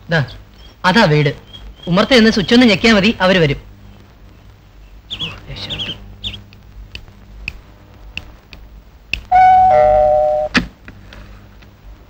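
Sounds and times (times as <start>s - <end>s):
doorbell ding-dong chime: 9.4s - 10.5s.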